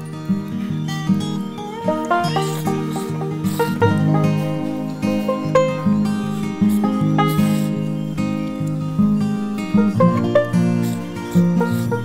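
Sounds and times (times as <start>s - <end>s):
plucked strings country music: 0.0s - 12.0s.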